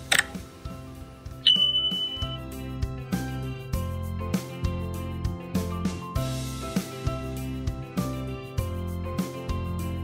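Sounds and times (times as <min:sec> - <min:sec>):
soft background music: 0:00.0 - 0:10.0
high notification beep: 0:01.4 - 0:02.5.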